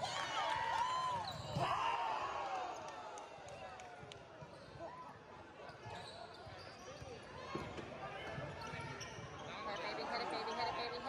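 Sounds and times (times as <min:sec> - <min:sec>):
spectators' voices and shouts: 0:07.3 - 0:11.0.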